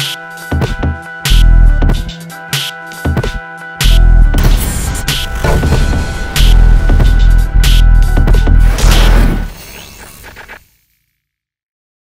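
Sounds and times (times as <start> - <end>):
music and effects logo sting: 4.4 - 10.6.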